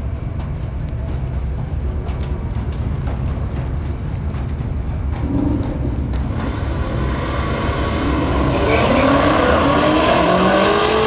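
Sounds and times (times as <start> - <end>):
engines idling: 0.0 - 11.0.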